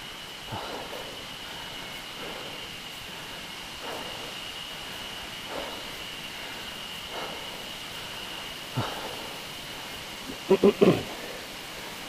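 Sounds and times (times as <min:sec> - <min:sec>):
bicycle tyres rolling on pavement: 0:00.0 - 0:12.0.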